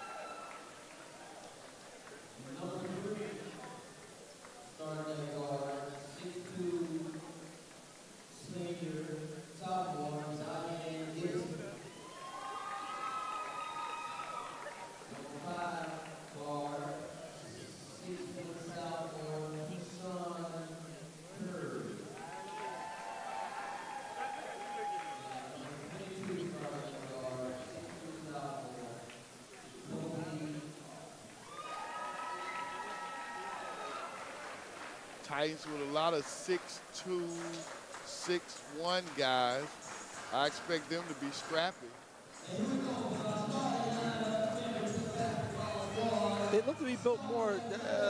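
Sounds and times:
crowd murmur in a gym: 0:00.0 - 0:48.0
man speaking drawn-out words: 0:35.2 - 0:48.0.

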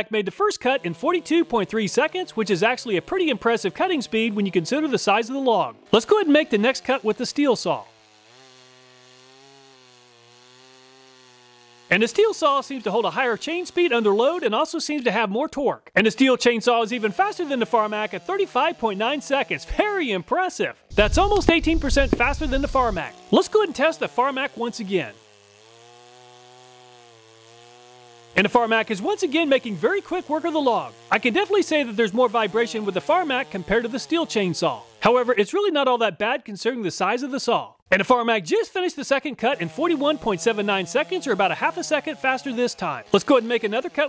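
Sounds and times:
chainsaw cutting through log: 0:00.0 - 0:14.4, 0:16.8 - 0:35.5, 0:38.7 - 0:44.0.

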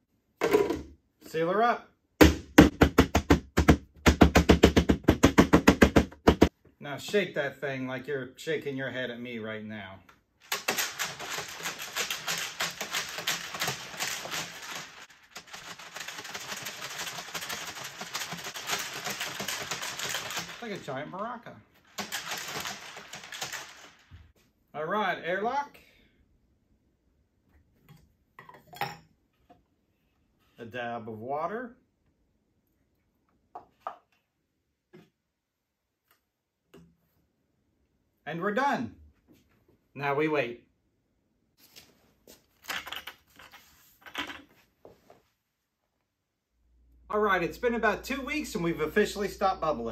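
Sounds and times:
beans rattling in plastic bucket: 0:10.4 - 0:24.3.

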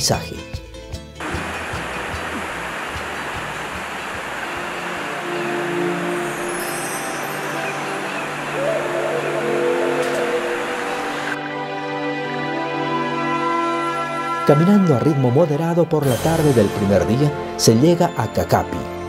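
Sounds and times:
soft background music: 0:00.0 - 0:19.0
river rushing over rocks: 0:01.2 - 0:11.4.

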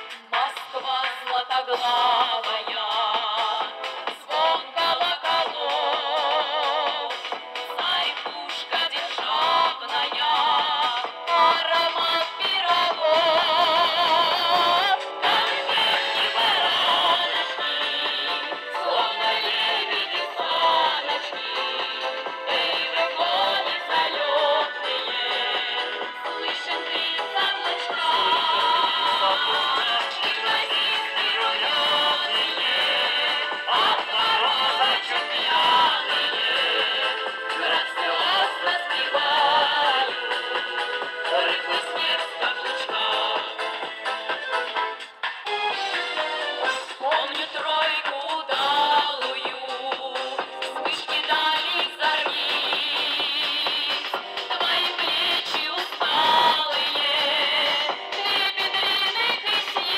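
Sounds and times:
women singing folk song: 0:00.4 - 0:40.2, 0:47.0 - 0:59.9.

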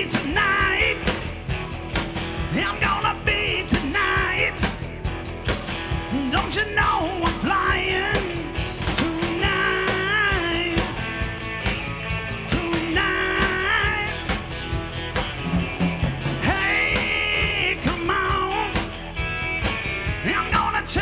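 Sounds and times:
electric guitar lead: 0:00.0 - 0:21.0
drum kit hits: 0:13.4 - 0:20.4.

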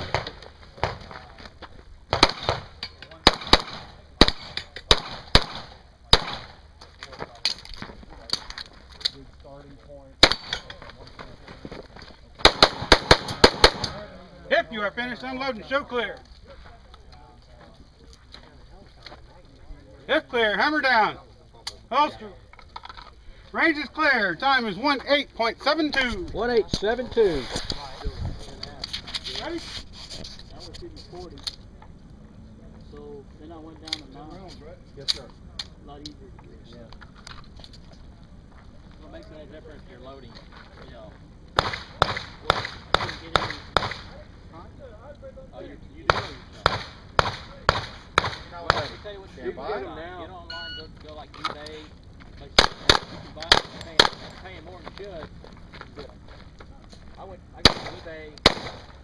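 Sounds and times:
pistol shots: 0:02.1 - 0:06.6, 0:10.2 - 0:10.6, 0:12.4 - 0:14.1, 0:41.6 - 0:44.1, 0:46.1 - 0:49.0, 0:52.6 - 0:54.3, 0:57.6 - 0:59.0
people talking: 0:05.6 - 0:12.5, 0:13.6 - 0:37.0, 0:37.9 - 0:41.2, 0:41.9 - 0:47.8, 0:48.4 - 0:58.4.

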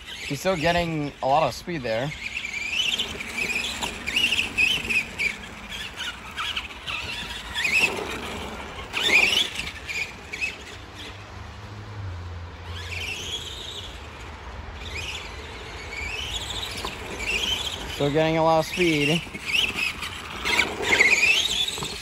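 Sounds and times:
remote control truck motor whining: 0:00.0 - 0:11.7, 0:12.5 - 0:22.0.

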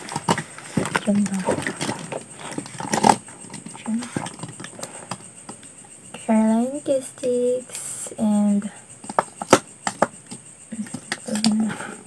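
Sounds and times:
woman humming: 0:10.7 - 0:12.0.

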